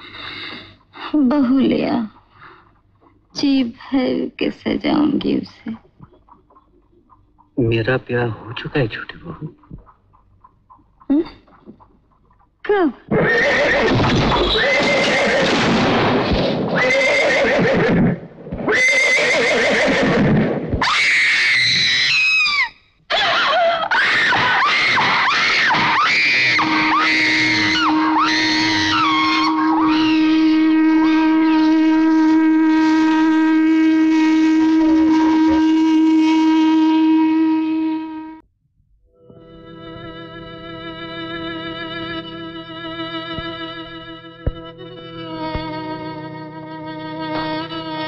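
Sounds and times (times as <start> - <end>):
horses whinnying: 13.1 - 31.5
steady held note: 26.6 - 38.4, 39.2 - 48.0.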